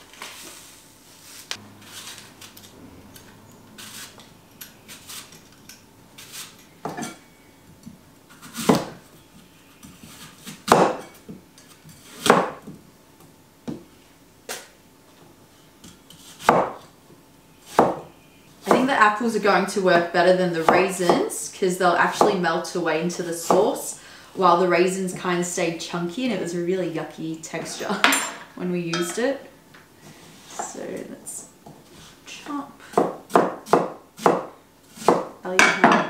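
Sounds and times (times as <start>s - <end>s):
knife cutting apple on wooden board: 8.3s - 9.0s, 9.8s - 12.7s, 15.9s - 16.9s, 17.6s - 18.9s, 32.9s - 35.3s.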